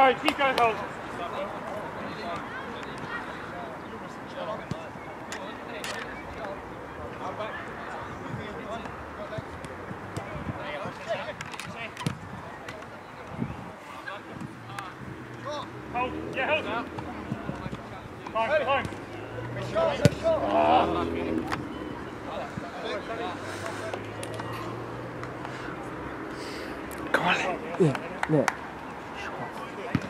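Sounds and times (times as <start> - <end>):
players shouting: 18.2 - 26.0.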